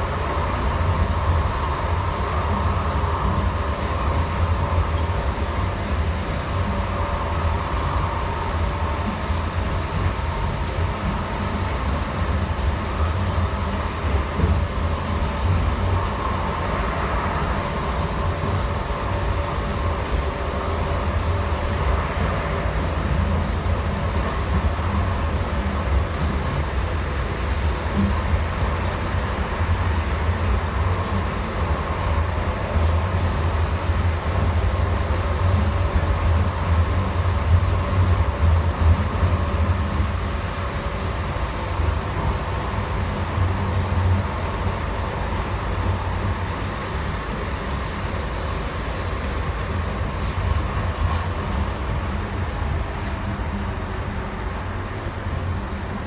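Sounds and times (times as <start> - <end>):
light rail car rumble: 0.0 - 56.0.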